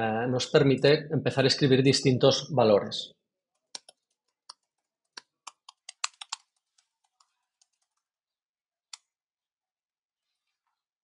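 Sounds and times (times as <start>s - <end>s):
computer keyboard typing: 3.6s - 8.0s.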